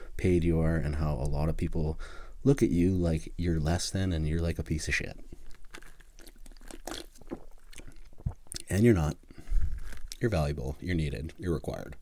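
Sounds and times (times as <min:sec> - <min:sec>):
sipping and swallowing: 0:05.4 - 0:08.8, 0:09.4 - 0:10.2
wet mouth clicks: 0:05.5 - 0:08.7.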